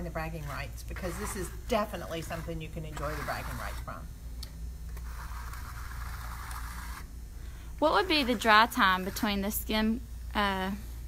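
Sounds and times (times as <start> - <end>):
low steady hum: 0.0 - 11.0
metal trowel scraping wet plaster: 0.4 - 4.0.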